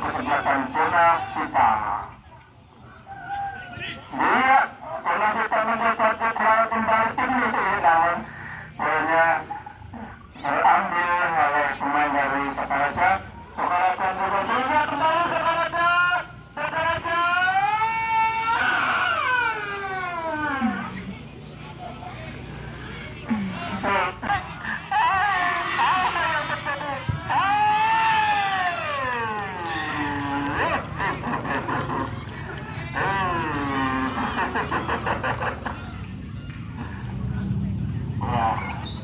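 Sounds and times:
man shouting long drawn-out call: 0.0s - 2.1s, 3.0s - 21.2s, 22.6s - 30.9s, 32.7s - 34.4s
man speaking over loudspeaker: 0.0s - 2.2s, 3.6s - 19.4s, 20.0s - 27.5s, 38.1s - 39.0s
rooster crowing: 2.8s - 4.2s.

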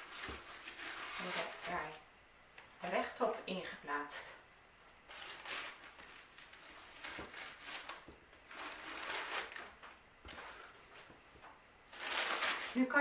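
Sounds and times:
plastic bag rustling and crinkling: 0.0s - 2.0s, 5.1s - 13.0s.

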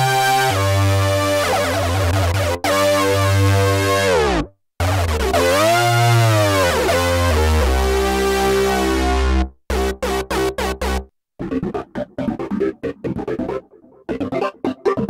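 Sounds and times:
synthesizer lead line: 0.5s - 15.0s.

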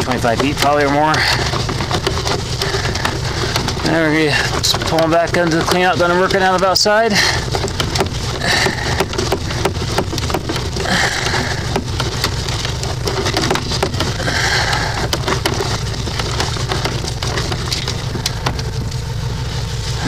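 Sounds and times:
cable crackling and clicking in pipe: 0.0s - 19.4s
engine humming: 0.0s - 20.0s.

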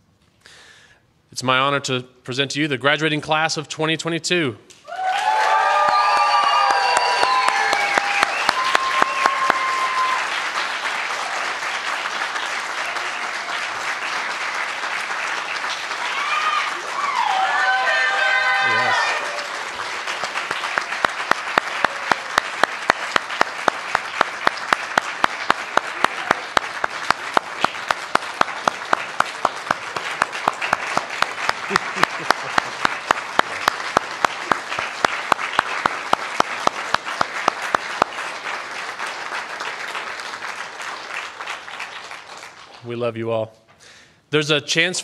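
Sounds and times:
audience applauding: 4.9s - 43.0s
sharp close clapping: 6.6s - 16.1s, 20.0s - 42.9s.

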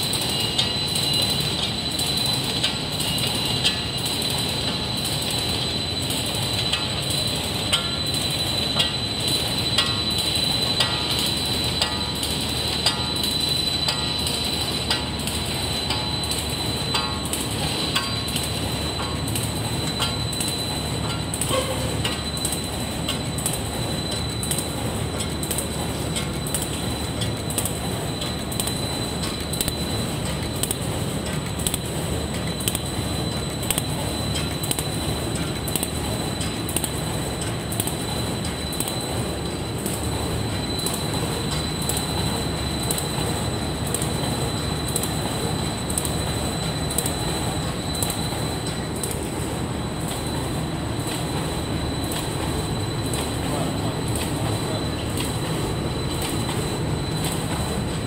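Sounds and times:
machine belts and rollers rumbling: 0.0s - 58.0s
regular mechanical click: 0.0s - 58.0s
thin high whine: 38.4s - 58.0s.

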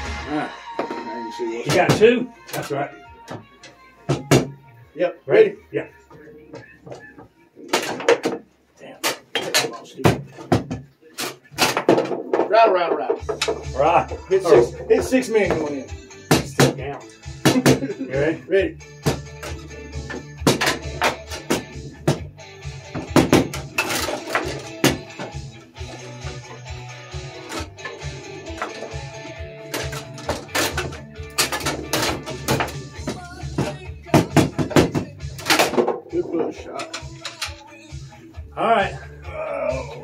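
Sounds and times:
background music with bass beat: 0.0s - 8.0s, 13.2s - 40.0s
foosball clacks and knocks: 9.1s - 13.7s, 22.9s - 26.1s, 29.6s - 37.6s.

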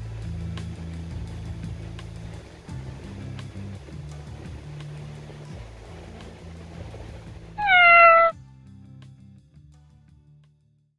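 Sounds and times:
quiet background music: 0.0s - 7.6s
cat meow: 7.6s - 8.3s.

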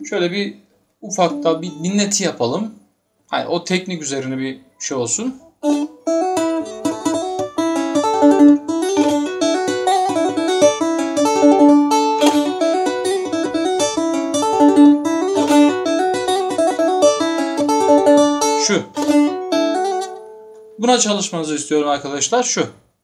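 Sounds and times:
plucked lute notes: 1.1s - 2.2s, 5.4s - 20.8s.

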